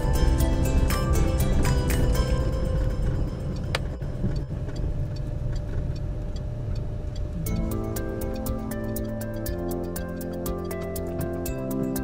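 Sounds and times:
background music: 0:00.0 - 0:05.0, 0:07.4 - 0:12.0
road noise from moving car: 0:00.0 - 0:12.0.

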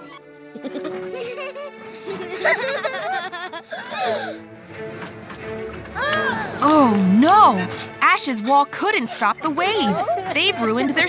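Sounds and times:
cartoon characters giggling: 0:00.0 - 0:04.3, 0:08.4 - 0:11.0
light cartoon background music: 0:00.0 - 0:11.0.

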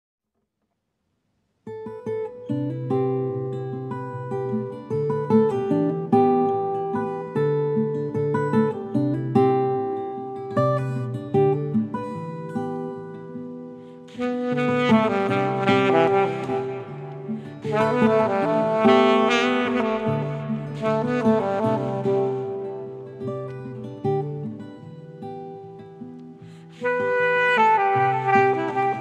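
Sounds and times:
acoustic guitar picking: 0:01.8 - 0:29.0.

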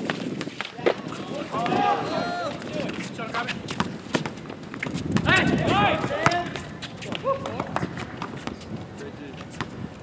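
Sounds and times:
running footsteps: 0:00.0 - 0:10.0
players calling out: 0:00.9 - 0:03.0.

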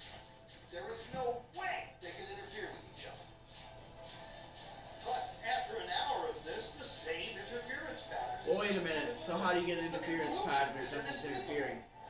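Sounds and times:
background music: 0:00.0 - 0:12.0
person speaking: 0:05.0 - 0:11.9.

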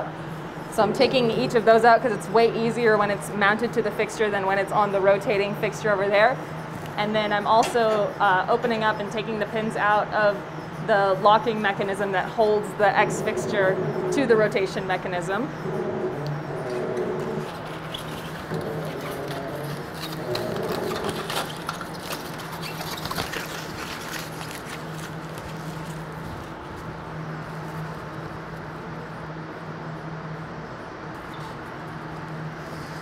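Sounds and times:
lab equipment humming: 0:00.0 - 0:33.0.

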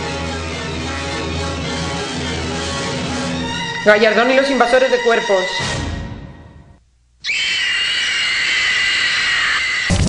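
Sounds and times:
woman screaming: 0:07.2 - 0:09.9.

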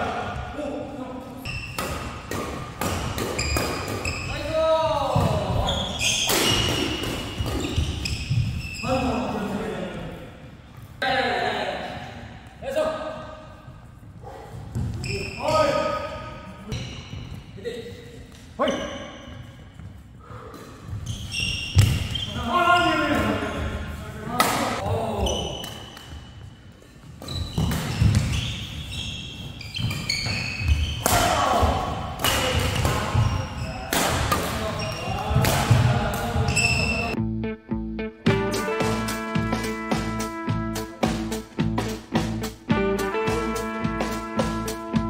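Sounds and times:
shoe squeaks on court: 0:01.4 - 0:02.2, 0:03.0 - 0:04.4, 0:05.6 - 0:09.1, 0:14.8 - 0:15.8, 0:21.0 - 0:23.8, 0:27.2 - 0:31.1, 0:34.6 - 0:35.3, 0:36.5 - 0:37.2
racket striking shuttlecock: 0:01.7 - 0:04.1
players' voices: 0:04.2 - 0:06.8, 0:31.0 - 0:37.2.

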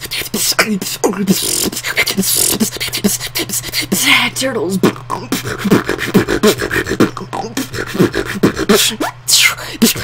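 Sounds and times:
woman beatboxing: 0:00.0 - 0:10.0.

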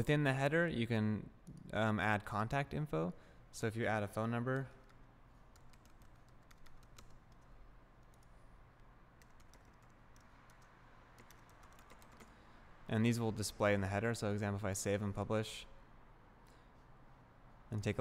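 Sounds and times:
faint keyboard typing: 0:04.4 - 0:12.4.

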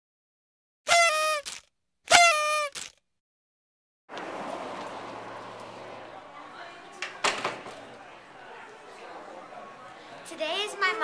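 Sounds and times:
short horn tones: 0:00.9 - 0:03.0
road ambience rushing noise: 0:04.1 - 0:10.3.

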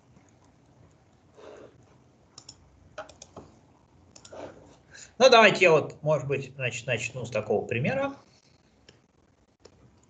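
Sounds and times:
faint computer clicks: 0:02.4 - 0:04.4.

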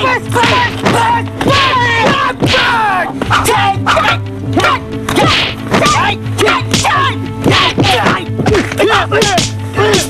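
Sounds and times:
sharp yelping cries: 0:00.0 - 0:08.3
film soundtrack music with drone: 0:00.0 - 0:10.0.

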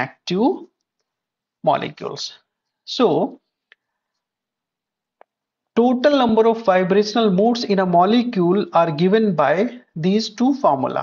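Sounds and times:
man speaking: 0:00.0 - 0:00.8, 0:01.6 - 0:03.5, 0:05.8 - 0:11.0.

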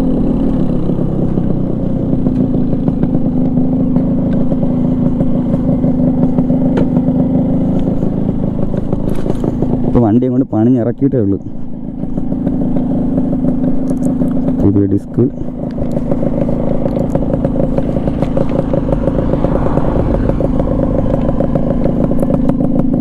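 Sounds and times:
two-stroke motorcycle engine idling: 0:00.0 - 0:23.0.

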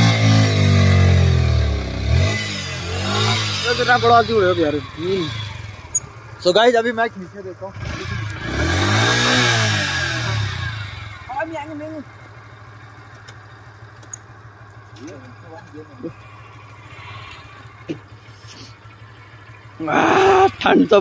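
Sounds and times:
motorcycle engine revving and idling: 0:00.0 - 0:21.0.

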